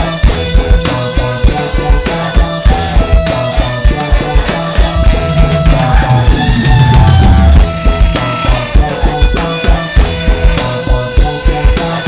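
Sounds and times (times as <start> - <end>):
bass guitar: 0.0 - 12.0
drum kit fast beat: 0.0 - 12.0
electric guitars: 0.0 - 12.0
saxophone: 0.0 - 12.0.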